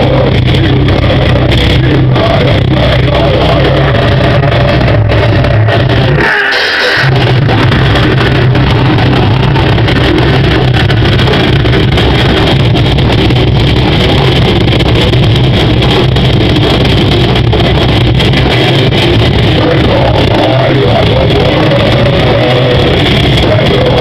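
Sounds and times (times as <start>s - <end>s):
metal band playing live: 0.0s - 24.0s.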